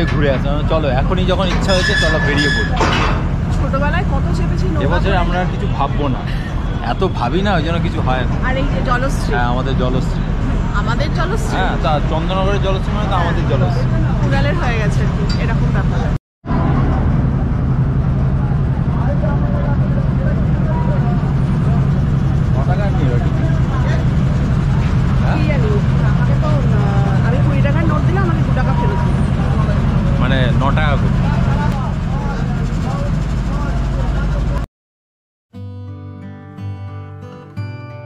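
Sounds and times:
ferry engine droning: 0.0 - 34.7
indistinct passenger chatter: 0.0 - 34.7.

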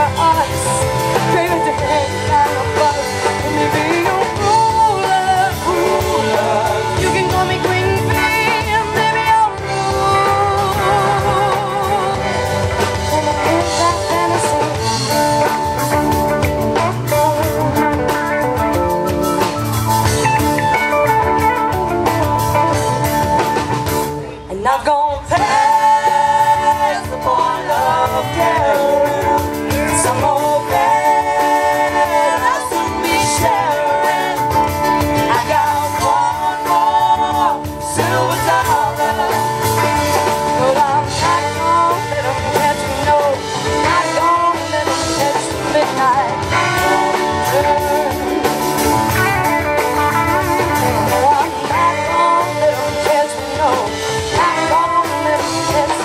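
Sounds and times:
woman singing: 0.0 - 15.7, 16.6 - 18.4, 24.4 - 49.3, 50.1 - 56.0
live rock band playing: 0.0 - 56.0.

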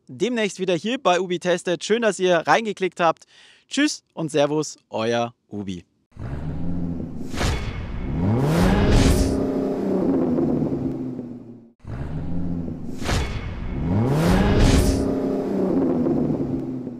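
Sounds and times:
car engine revving: 6.2 - 11.6, 12.2 - 16.9
quick whooshes: 7.2 - 8.0.

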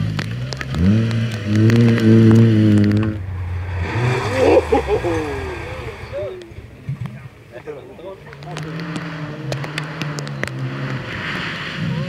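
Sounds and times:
rally car engine revving: 0.0 - 12.0
gliding rising and falling sounds: 1.8 - 6.9
voices: 2.8 - 10.6.

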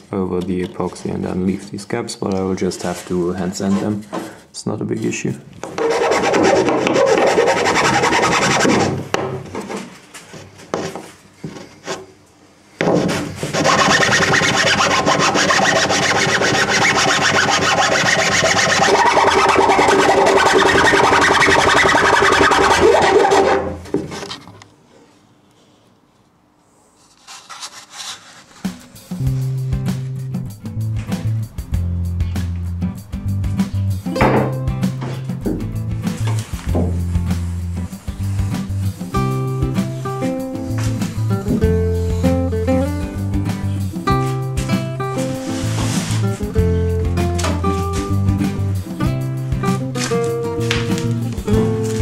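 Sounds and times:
hand file rasping on plywood: 5.8 - 9.0, 12.9 - 23.8.

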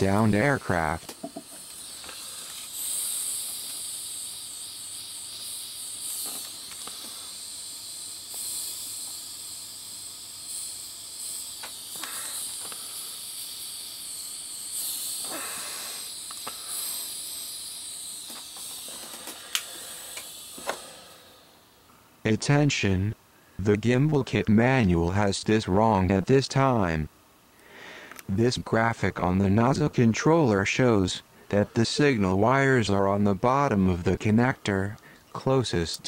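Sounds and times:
heat gun hissing: 0.0 - 21.9.

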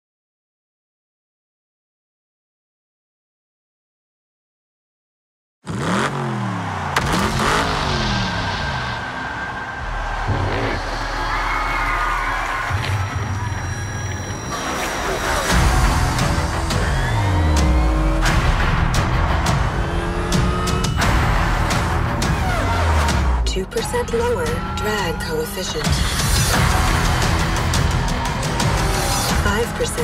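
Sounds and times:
race car engines passing: 5.7 - 12.9
tire squeal: 5.8 - 18.3
music: 9.8 - 30.0.

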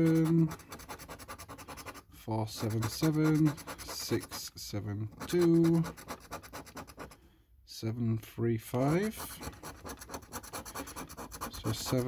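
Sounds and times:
coin scratching a scratch card: 0.0 - 7.2, 8.8 - 12.0.

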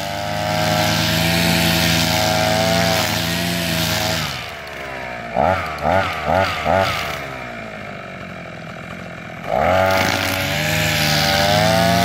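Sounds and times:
brush cutter engine idling: 0.0 - 12.0.

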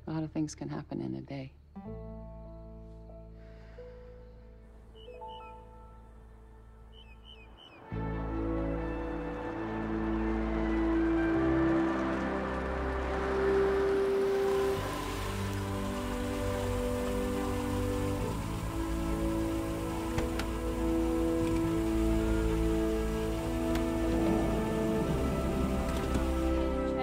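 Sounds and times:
slow sustained film score chords: 1.8 - 27.0.

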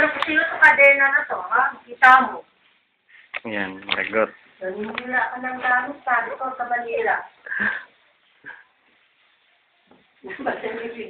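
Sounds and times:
person speaking: 3.2 - 7.7.

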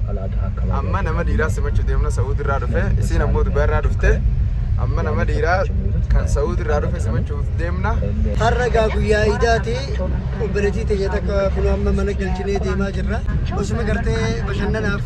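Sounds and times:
car rumbling on road: 0.0 - 15.0
man talking: 0.0 - 15.0.

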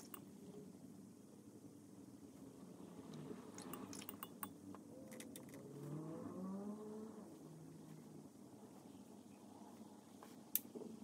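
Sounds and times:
faint vehicle engine accelerating: 4.9 - 8.4.

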